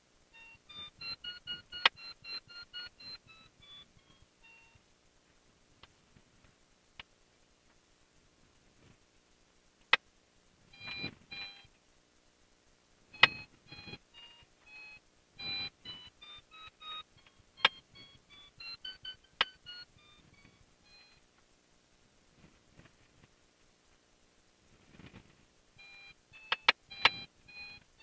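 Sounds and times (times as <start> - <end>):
short electronic beeps: 0.4 - 4.8, 10.7 - 11.7, 13.1 - 21.2, 25.8 - 27.8
sharp clicks: 0.4 - 4.9, 9.8 - 11.8, 13.1 - 21.5, 26.3 - 28.0.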